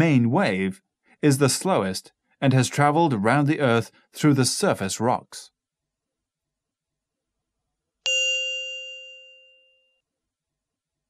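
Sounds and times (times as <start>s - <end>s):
bell-like chime: 8.0s - 10.0s.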